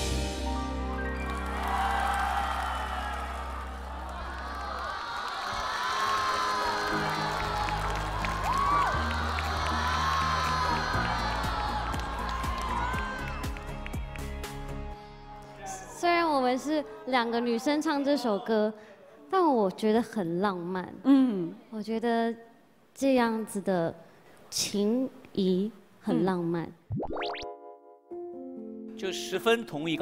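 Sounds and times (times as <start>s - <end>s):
soft instrumental music: 0.0s - 2.5s, 6.3s - 15.7s, 27.2s - 30.0s
audience cheering and clapping: 1.0s - 14.7s
whoops and shouts: 1.4s - 13.6s.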